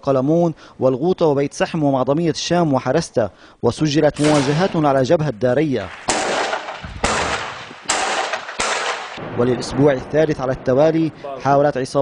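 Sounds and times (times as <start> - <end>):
rifle shots with long echo: 4.2 - 9.6.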